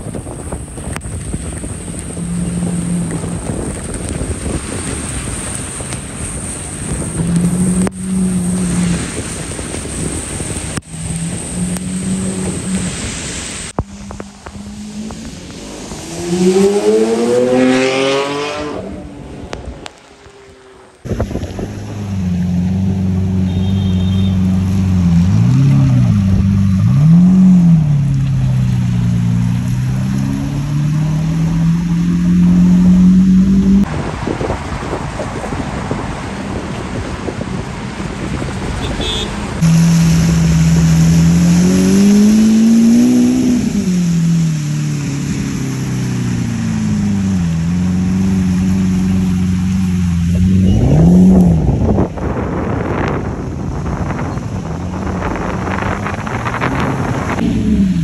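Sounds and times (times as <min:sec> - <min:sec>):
rain and road spray: 0:00.0 - 0:58.0
sports car engine revving: 0:13.8 - 0:19.9, 0:39.0 - 0:53.1.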